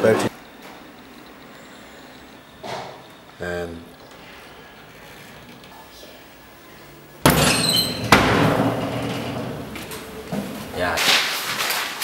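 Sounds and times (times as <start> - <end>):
sharp bang: 7.2 - 9.2
door crashing open: 7.2 - 12.0.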